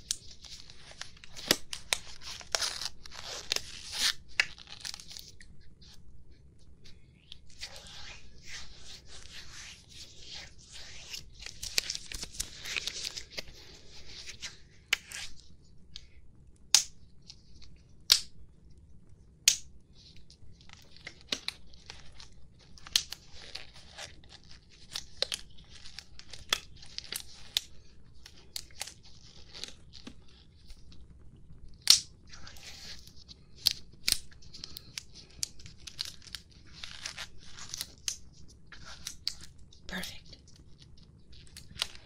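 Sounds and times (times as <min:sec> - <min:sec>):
rubbery glove rustle: 0:00.0 - 0:06.1, 0:06.8 - 0:15.5, 0:20.0 - 0:31.1, 0:31.7 - 0:39.7
sharp latex glove snap: 0:16.7 - 0:17.0, 0:18.0 - 0:18.4, 0:19.4 - 0:19.7, 0:31.8 - 0:32.2.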